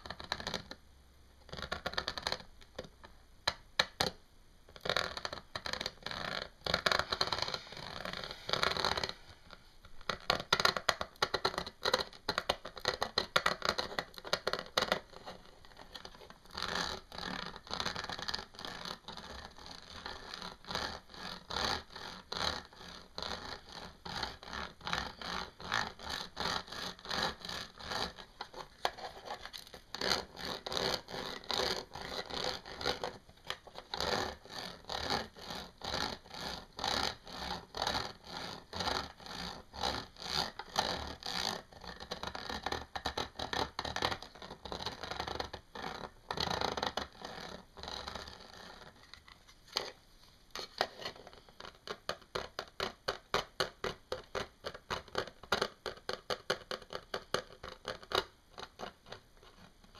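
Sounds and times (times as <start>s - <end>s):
fingernails scratching textured sheet: 4.9s - 10.7s, 12.7s - 49.9s.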